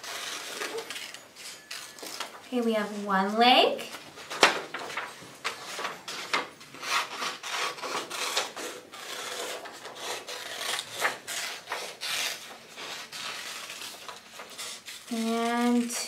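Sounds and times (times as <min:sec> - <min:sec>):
scissors cutting paper: 0:00.0 - 0:02.3, 0:03.8 - 0:16.0
paper rustling: 0:00.0 - 0:16.0.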